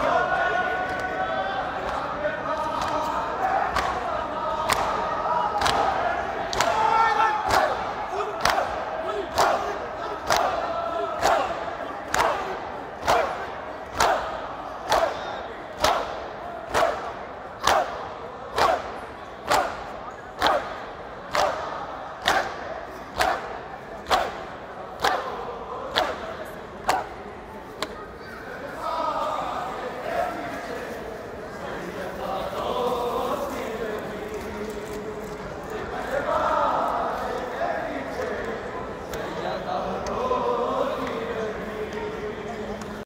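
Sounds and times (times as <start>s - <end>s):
crowd voices calling: 0.0s - 43.0s.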